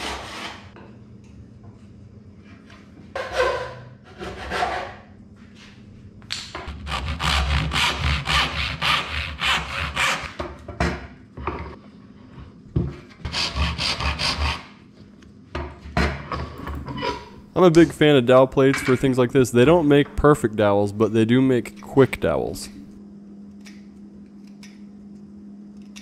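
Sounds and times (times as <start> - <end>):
hand saw cutting wood: 0.0 - 0.7, 3.2 - 5.0, 6.7 - 10.3, 13.3 - 14.7.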